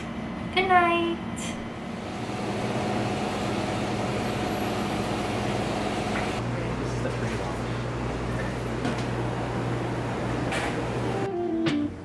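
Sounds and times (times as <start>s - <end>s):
steady machine noise: 1.7s - 6.6s.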